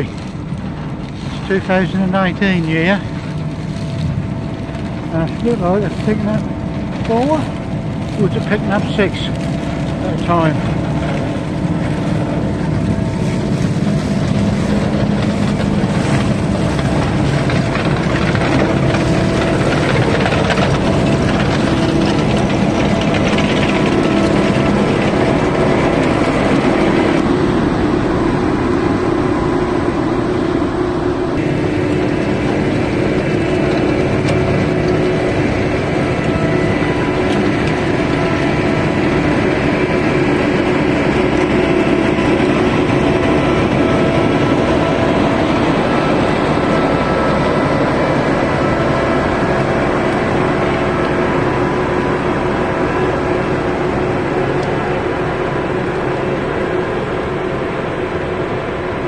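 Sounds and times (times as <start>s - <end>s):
harvester engine droning: 0.0s - 59.0s
tractor pulling trailer: 0.0s - 59.0s.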